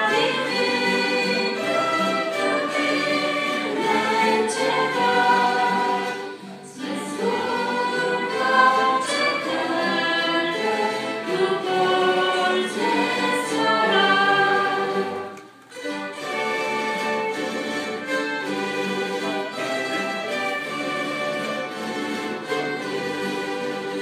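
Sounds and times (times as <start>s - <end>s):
voices singing a hymn: 0.0s - 15.6s
string orchestra playing: 0.0s - 24.0s.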